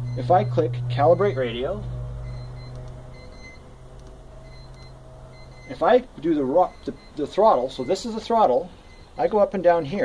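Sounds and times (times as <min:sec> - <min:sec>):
faint high tones: 0:00.0 - 0:09.3
low steady hum: 0:00.0 - 0:10.0.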